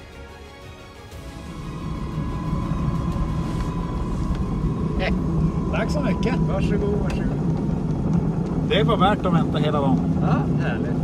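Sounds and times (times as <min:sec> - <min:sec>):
propeller and airflow rumble: 0:00.0 - 0:11.0
thin high whine: 0:01.2 - 0:07.8.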